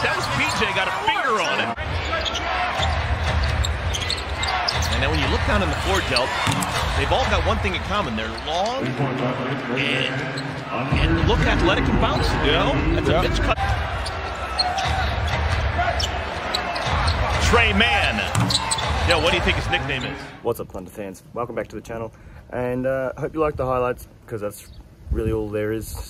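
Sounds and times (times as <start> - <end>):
crowd hum: 0.0 - 20.4.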